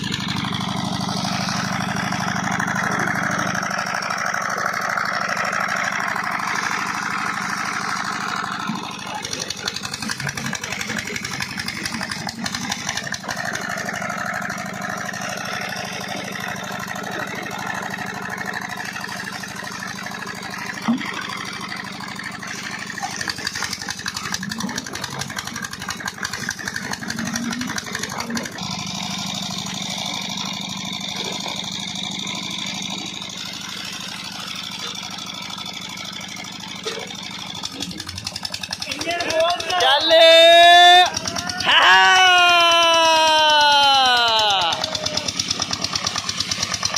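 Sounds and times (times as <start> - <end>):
flywheel engine running: 0.0 - 46.9.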